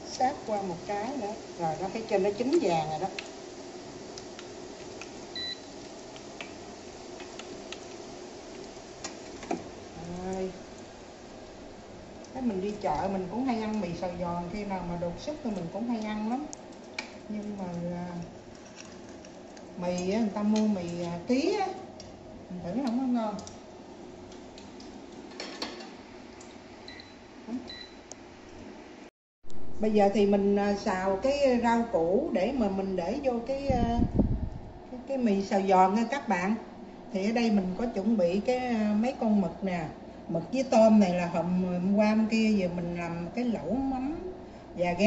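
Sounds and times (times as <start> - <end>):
noodles sizzling in hot oil: 0.0 - 25.5
low room noise: 0.0 - 45.0.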